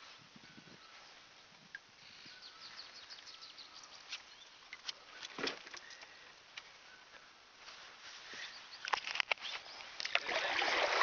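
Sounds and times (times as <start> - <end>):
small birds chirping: 0.4 - 10.2.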